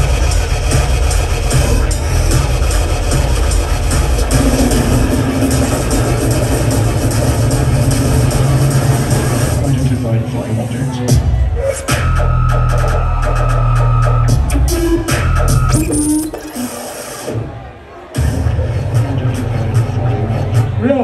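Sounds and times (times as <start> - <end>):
dubstep music with heavy bass: 0.0 - 21.0.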